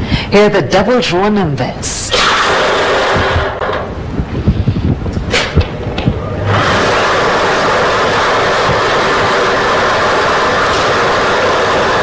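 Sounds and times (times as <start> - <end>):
machine rushing noise: 2.1 - 12.0.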